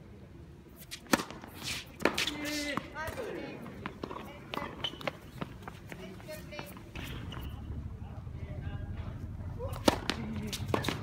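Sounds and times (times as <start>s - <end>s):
footsteps on hard court: 2.0s - 7.5s.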